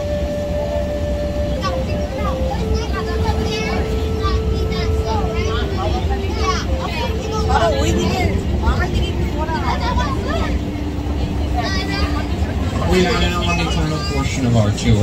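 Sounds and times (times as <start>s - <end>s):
hum shifting pitch in steps: 0.0s - 15.0s
mini train rumbling: 0.0s - 15.0s
girl talking: 1.6s - 12.6s.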